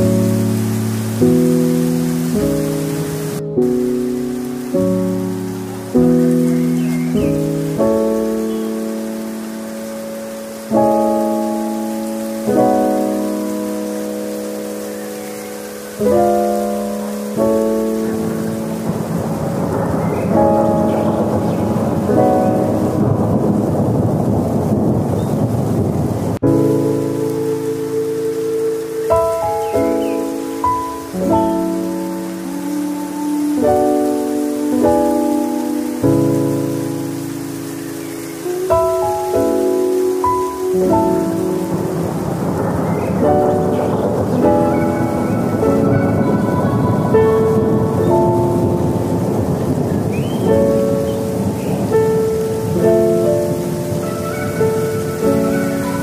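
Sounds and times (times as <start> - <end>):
slow music chords: 0.0 - 23.9, 26.4 - 56.0
rain: 0.0 - 56.0
thunder: 17.5 - 27.7, 38.8 - 56.0.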